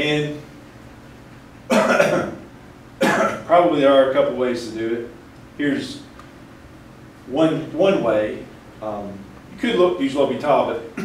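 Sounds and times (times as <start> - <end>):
man coughing: 1.7 - 2.4, 3.0 - 3.5.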